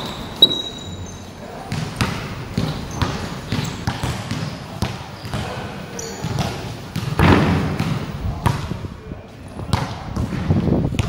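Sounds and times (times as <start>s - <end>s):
sneaker squeaks: 0.0s - 7.9s
basketball dribbling: 1.7s - 5.6s, 6.2s - 8.7s.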